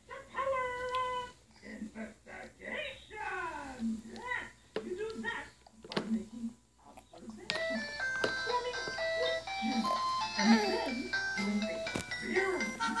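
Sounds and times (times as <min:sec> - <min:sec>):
electronic toy jingle: 0:07.6 - 0:13.0.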